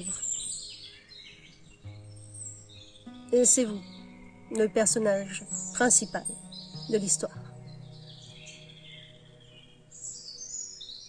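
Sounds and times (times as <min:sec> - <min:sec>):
bird chirping: 0:00.0 - 0:11.0
soft background music note: 0:00.0 - 0:11.0.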